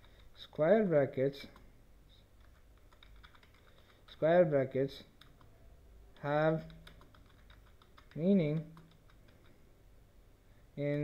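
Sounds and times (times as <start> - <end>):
faint keyboard typing: 0.0 - 0.6, 1.4 - 1.7, 2.4 - 4.3, 5.0 - 9.7.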